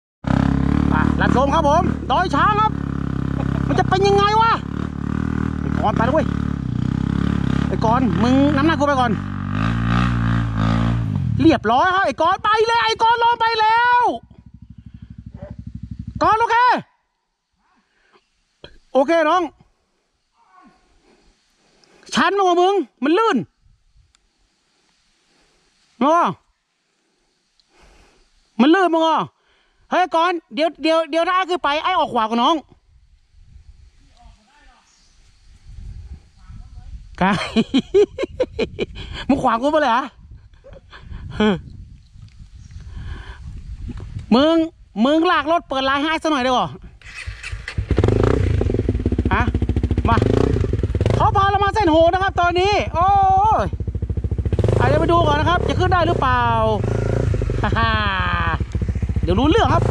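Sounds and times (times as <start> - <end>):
motorcycle engine revving: 0.2 - 12.6, 14.0 - 16.5, 47.0 - 59.9
person shouting: 11.9 - 14.2, 20.4 - 20.8.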